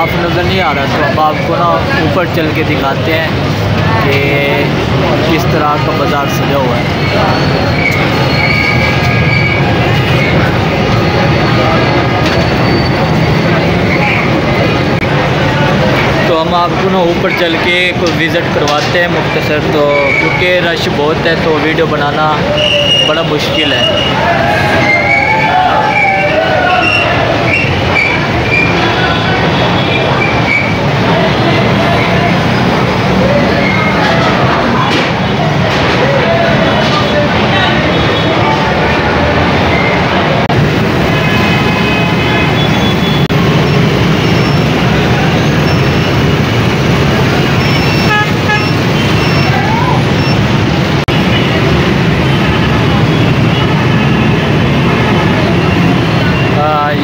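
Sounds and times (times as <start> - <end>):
crowd voices: 0.0 - 57.0
street traffic din: 0.0 - 57.0
vehicle horns beeping: 26.0 - 32.7, 41.1 - 43.4, 47.5 - 54.6.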